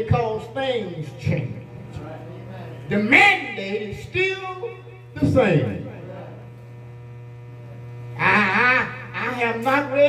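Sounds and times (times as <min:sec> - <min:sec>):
man's voice over loudspeaker: 0:00.0 - 0:06.4, 0:08.2 - 0:10.0
electrical mains hum: 0:00.0 - 0:10.0.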